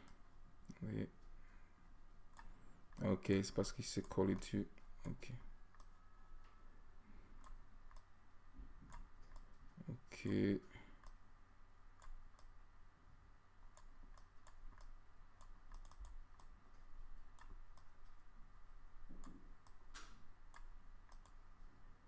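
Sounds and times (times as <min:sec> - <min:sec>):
low steady hum: 0:00.0 - 0:22.0
computer mouse clicks: 0:02.3 - 0:03.1, 0:03.9 - 0:06.6, 0:07.4 - 0:08.1, 0:08.8 - 0:09.8, 0:11.0 - 0:11.2, 0:12.0 - 0:12.5, 0:13.7 - 0:18.2, 0:19.1 - 0:21.5.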